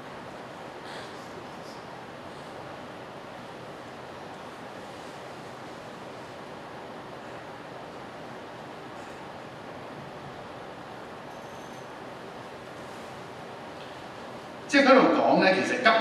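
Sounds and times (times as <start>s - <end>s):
faint room hiss: 0.0s - 16.0s.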